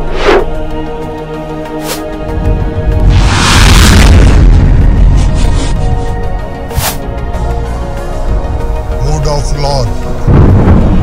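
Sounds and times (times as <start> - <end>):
dramatic intro music: 0.0 - 11.0.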